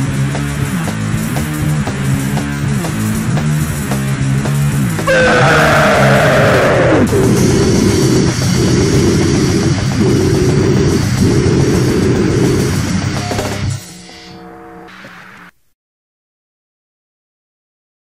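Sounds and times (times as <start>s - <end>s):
distorted hardcore punk music: 0.0s - 15.6s
high sound sliding down in pitch: 5.1s - 7.1s.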